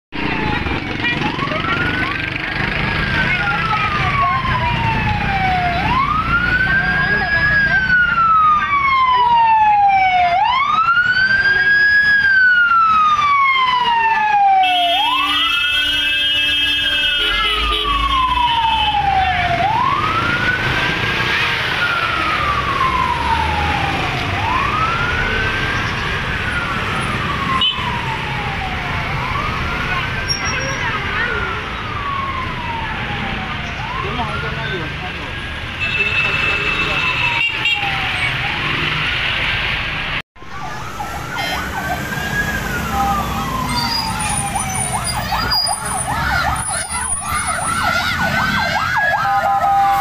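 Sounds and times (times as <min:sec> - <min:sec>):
emergency siren wailing: 0:00.1 - 0:50.0
street and crowd noise: 0:00.1 - 0:50.0.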